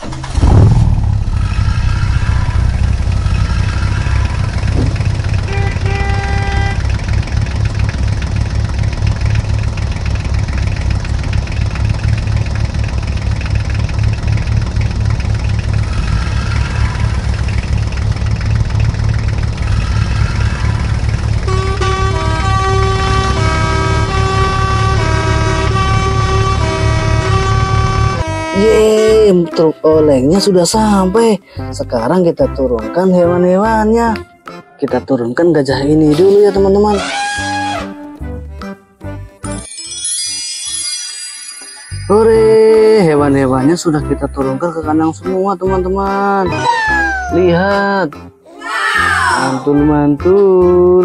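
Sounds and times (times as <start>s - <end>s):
truck engine rumble: 0.0s - 34.6s
horn honks: 1.4s - 7.4s, 15.7s - 18.0s, 19.2s - 29.7s
horn playing changing notes: 5.4s - 7.0s, 19.7s - 31.1s, 36.6s - 38.8s.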